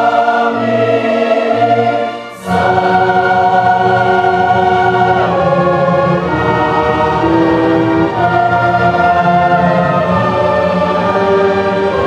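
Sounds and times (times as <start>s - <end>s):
choir singing held chords: 0.0s - 12.0s
orchestra playing: 0.0s - 12.0s.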